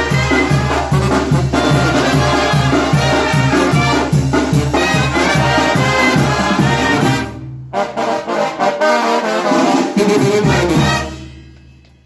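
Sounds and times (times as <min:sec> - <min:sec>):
brass band playing: 0:00.0 - 0:11.6.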